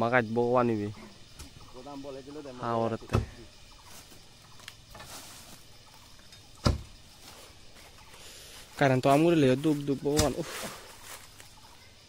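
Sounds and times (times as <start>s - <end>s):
machete chopping tree trunk: 6.6s - 7.0s, 10.1s - 10.5s.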